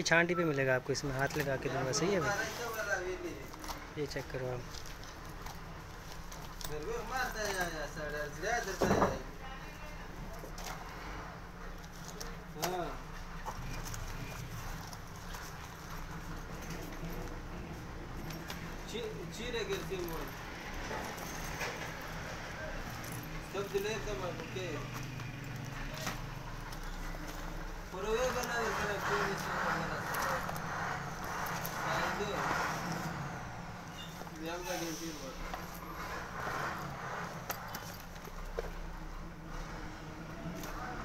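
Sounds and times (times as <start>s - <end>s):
low traffic rumble: 0.0s - 41.0s.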